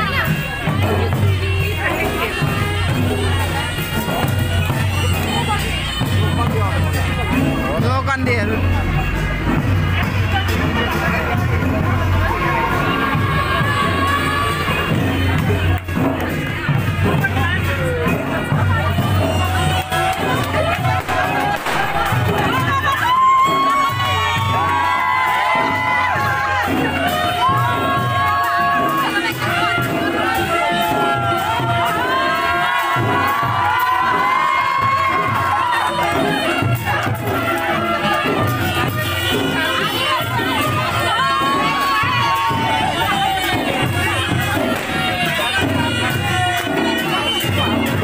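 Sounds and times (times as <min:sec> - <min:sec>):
crowd talking and cheering: 0:00.0 - 0:48.0
music: 0:00.0 - 0:48.0
crowd cheering and whooping: 0:19.4 - 0:29.2, 0:30.2 - 0:36.4, 0:40.7 - 0:44.0.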